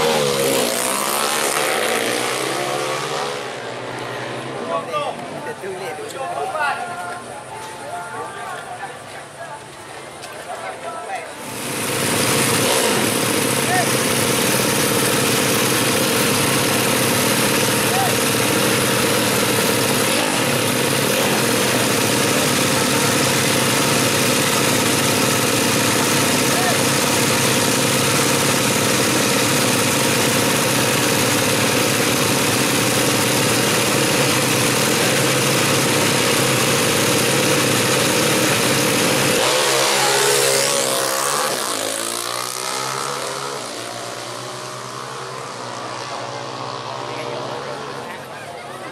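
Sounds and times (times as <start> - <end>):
motorcycles accelerating away: 0.0 - 4.6, 11.4 - 48.9
motorcycle engines running: 0.0 - 5.4, 11.2 - 48.9.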